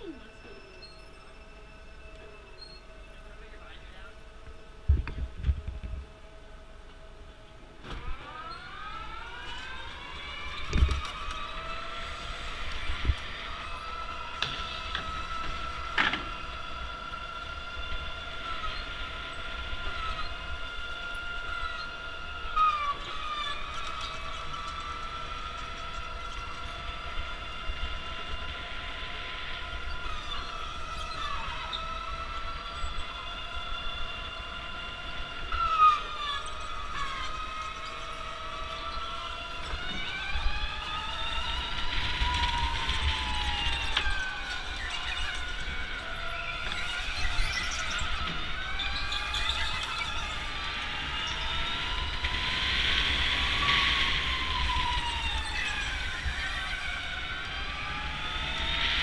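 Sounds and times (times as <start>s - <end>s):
brief tyre squeals: 0.0s - 3.2s, 42.3s - 52.0s
electric go-kart motor whine: 0.0s - 59.0s
wind rumble on microphone: 4.5s - 6.2s, 9.8s - 59.0s.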